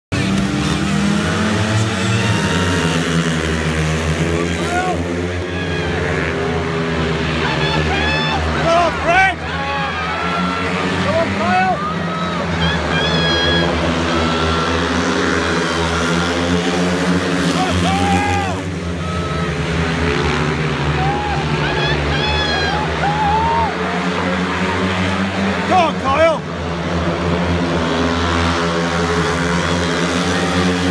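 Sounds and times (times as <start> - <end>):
voices calling out: 0.1 - 26.5, 28.6 - 30.9
motorbike engines racing: 0.1 - 30.9.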